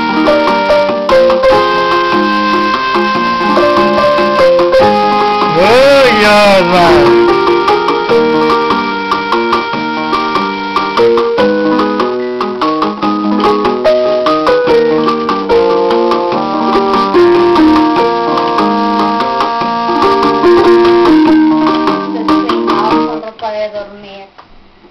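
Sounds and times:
electronic keyboard notes: 0.0s - 23.3s.

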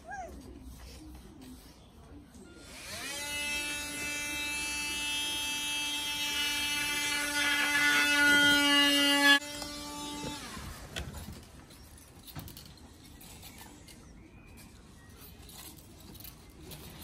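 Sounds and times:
electric power tool whining: 2.6s - 11.2s.

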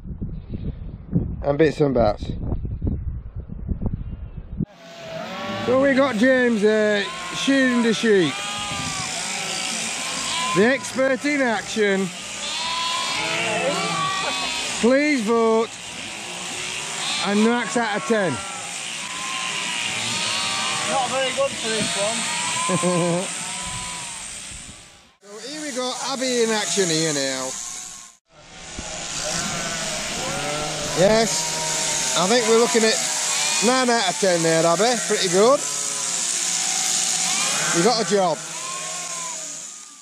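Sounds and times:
sheep bleating: 4.7s - 28.2s, 28.8s - 39.8s
electric shearing handpiece running: 4.7s - 40.0s.

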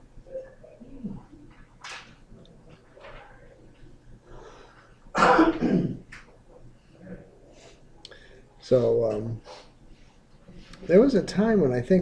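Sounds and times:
man clearing his throat: 5.2s - 6.0s.

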